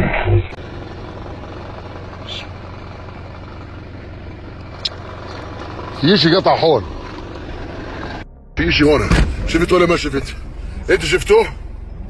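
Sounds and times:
vehicle engine running: 0:00.5 - 0:12.0.

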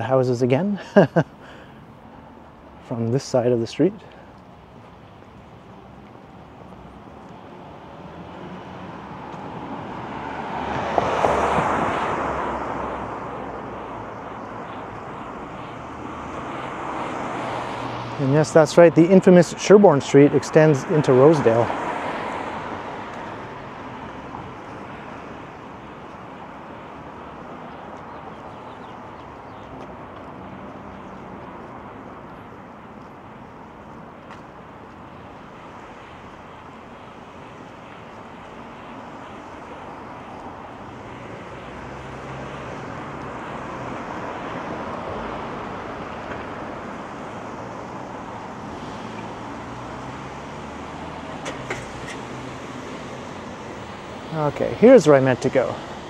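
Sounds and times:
road traffic hiss: 0:00.0 - 0:56.0
car passing with low rumble: 0:01.9 - 0:56.0.

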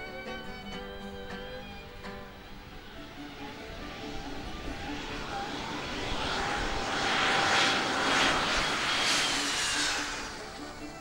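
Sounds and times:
soft music: 0:00.0 - 0:06.0
jet airliner rolling past: 0:00.0 - 0:11.0.

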